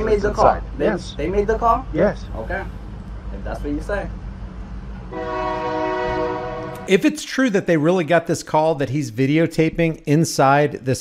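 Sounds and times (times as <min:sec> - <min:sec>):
man speaking: 0:00.0 - 0:02.7, 0:06.8 - 0:11.0.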